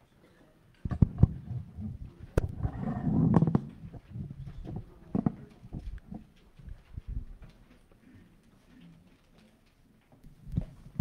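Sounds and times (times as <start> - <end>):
footsteps: 0.9 - 7.9.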